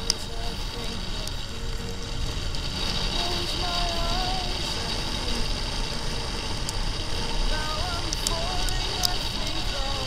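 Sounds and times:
motorcycle tyres on wet road: 0:00.0 - 0:10.0
song with sung melody: 0:00.0 - 0:10.0.

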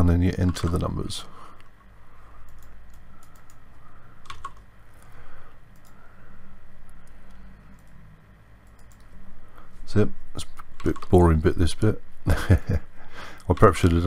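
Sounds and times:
low steady hum: 0:00.0 - 0:14.0.

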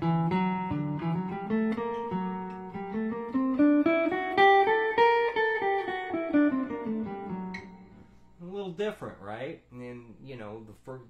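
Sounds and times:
jazz guitar playing a scale: 0:00.0 - 0:08.4.

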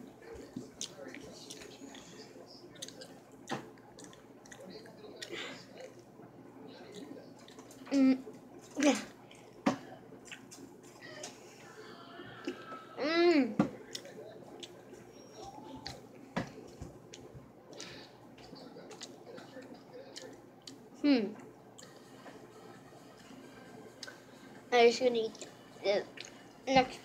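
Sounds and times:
person chewing gummy candy: 0:02.8 - 0:06.0.

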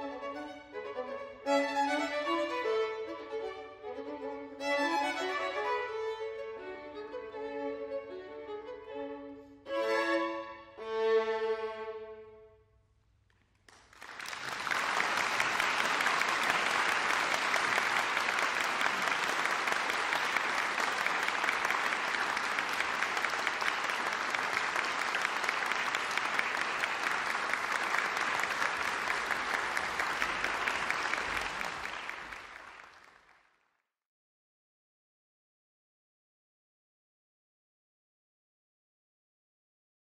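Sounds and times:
audience applauding: 0:13.5 - 0:33.6.

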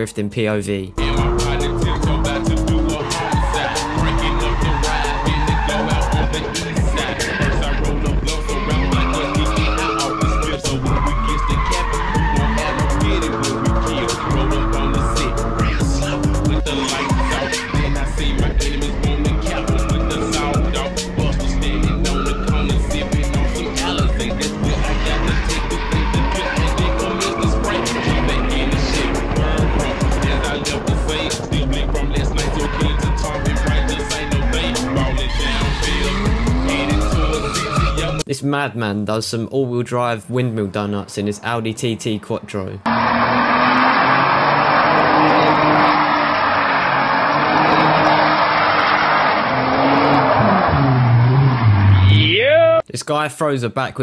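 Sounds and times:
car engine revving: 0:00.9 - 0:38.2, 0:42.9 - 0:52.4
background music with a beat: 0:01.0 - 0:38.3
tyres squealing: 0:01.0 - 0:38.3, 0:42.9 - 0:52.8.

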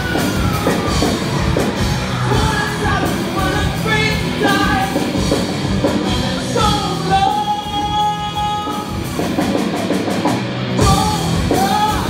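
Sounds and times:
rock band playing: 0:00.0 - 0:12.0
man singing: 0:02.1 - 0:05.3, 0:06.0 - 0:09.0, 0:10.8 - 0:12.0.

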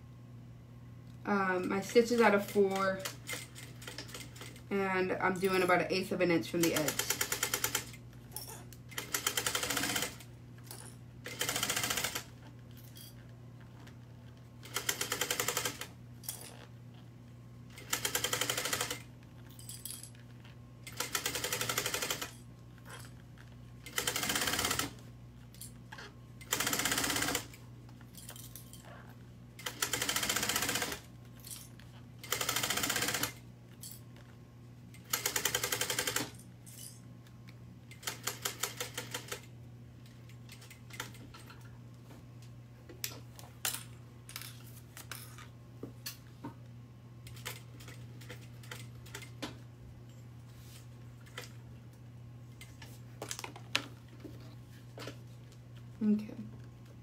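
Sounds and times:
steady low hum: 0:00.0 - 0:57.0
sewing machine stitching: 0:09.0 - 0:10.2, 0:11.3 - 0:12.4, 0:23.9 - 0:25.0, 0:26.4 - 0:27.5, 0:32.2 - 0:33.4.

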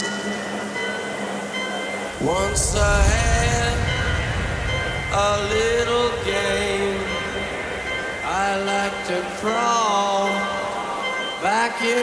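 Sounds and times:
held synth chord: 0:00.0 - 0:12.0.

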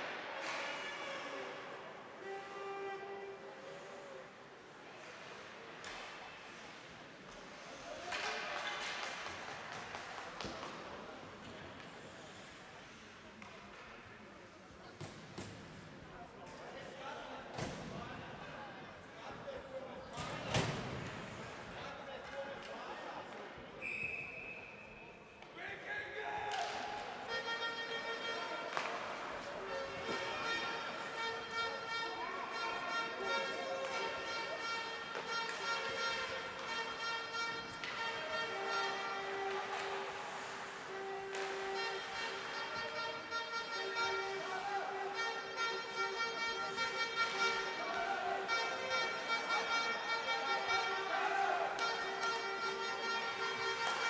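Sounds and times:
referee's whistle: 0:23.8 - 0:25.2.

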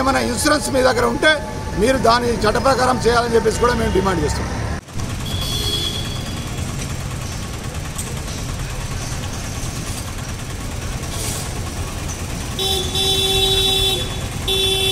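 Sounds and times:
traffic rumble: 0:00.0 - 0:14.9
vehicle horn: 0:05.0 - 0:06.8, 0:12.5 - 0:14.9.

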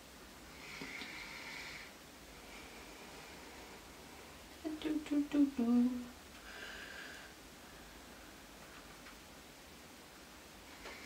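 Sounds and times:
woman humming: 0:04.6 - 0:06.2.

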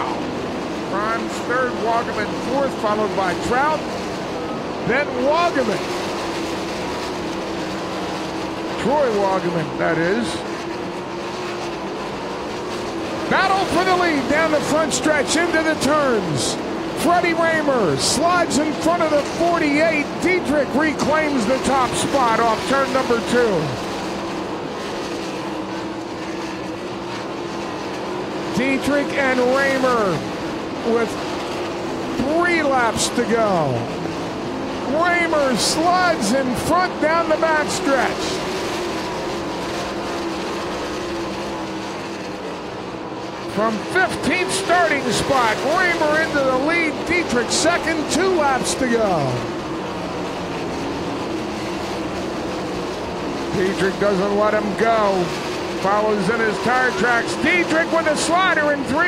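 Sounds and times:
race car engines droning: 0:00.0 - 0:59.0.

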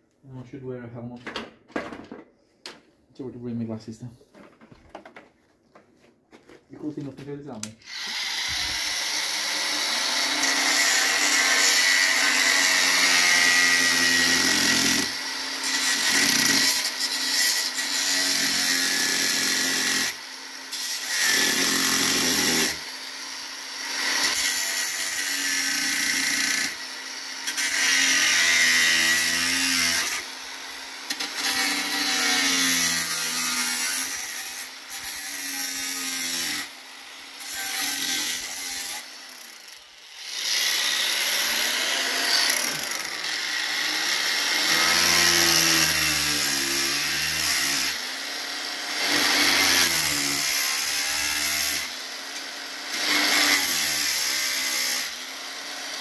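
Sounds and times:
angle grinder cutting steel: 0:07.8 - 0:56.0.

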